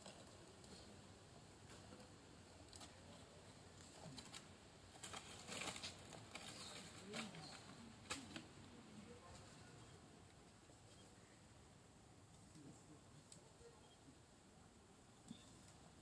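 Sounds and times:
dry leaves rustling: 0:04.2 - 0:09.7.

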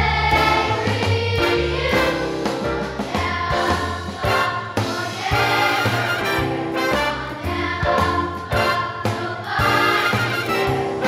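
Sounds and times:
children's choir singing jazz: 0:00.0 - 0:11.0.

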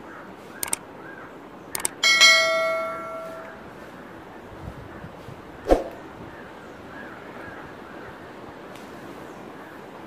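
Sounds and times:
double mouse click: 0:00.6 - 0:00.8, 0:01.8 - 0:02.0
notification bell ding: 0:02.0 - 0:03.6.

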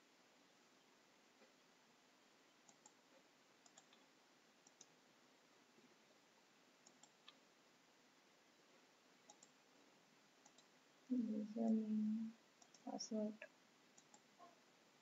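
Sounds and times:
low steady hiss: 0:00.0 - 0:15.0
computer mouse clicks: 0:02.6 - 0:05.0, 0:06.8 - 0:07.4, 0:09.2 - 0:09.6, 0:10.4 - 0:10.7, 0:12.6 - 0:13.0, 0:14.0 - 0:14.5.

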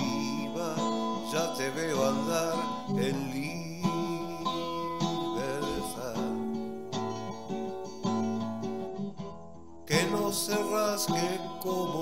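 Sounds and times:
man singing softly: 0:00.0 - 0:06.7, 0:09.9 - 0:12.0
acoustic guitar strumming: 0:00.0 - 0:12.0.

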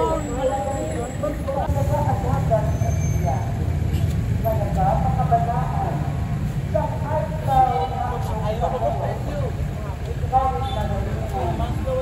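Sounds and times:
people talking: 0:00.0 - 0:03.7, 0:04.4 - 0:06.2
low rumble of street traffic: 0:00.0 - 0:12.0.

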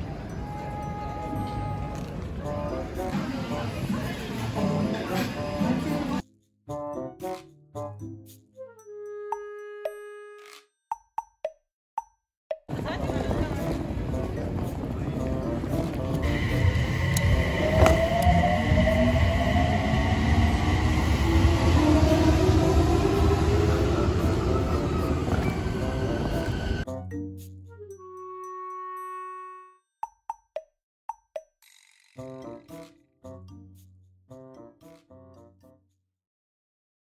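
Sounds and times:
electric train rumble and motor whine: 0:15.0 - 0:26.8.

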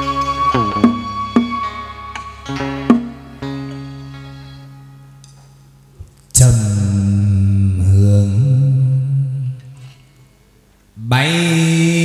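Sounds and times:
person singing long held notes: 0:06.4 - 0:09.8.

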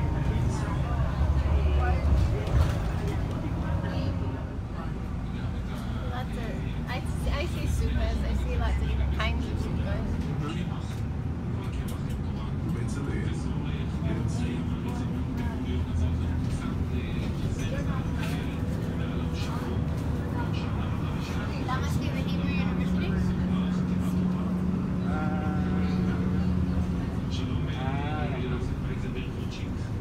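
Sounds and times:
bus engine running: 0:00.0 - 0:30.0
passengers' voices: 0:00.0 - 0:30.0.

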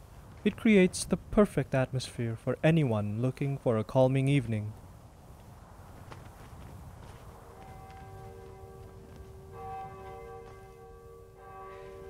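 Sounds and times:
bell tolling: 0:07.5 - 0:12.0.

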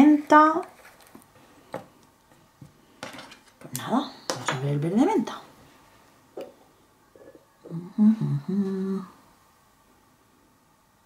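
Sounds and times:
woman humming: 0:07.6 - 0:09.3.

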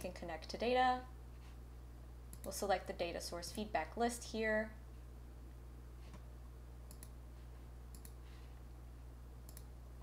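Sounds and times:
steady low hum: 0:00.0 - 0:10.0
computer mouse clicks: 0:02.3 - 0:02.6, 0:06.9 - 0:07.2, 0:07.9 - 0:08.2, 0:09.4 - 0:09.7.

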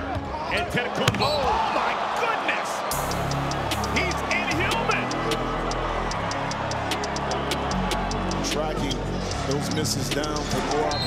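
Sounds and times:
arena crowd noise: 0:00.0 - 0:11.0
music with steady bass line: 0:03.0 - 0:11.0.

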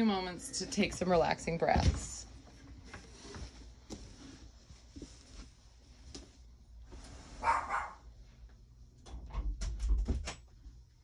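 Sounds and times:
dog barking: 0:07.4 - 0:08.1.

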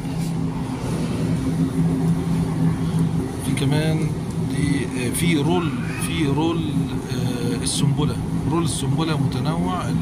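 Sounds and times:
freezer refrigeration hum: 0:00.0 - 0:10.0.

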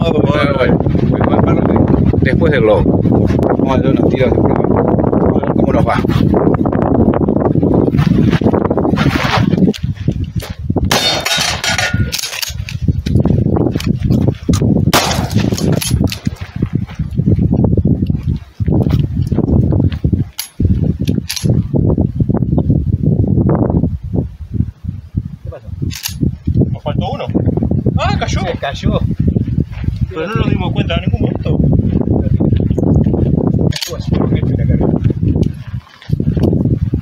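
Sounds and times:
shotgun firing: 0:10.9 - 0:12.0, 0:14.9 - 0:15.8
voices: 0:26.7 - 0:29.1.

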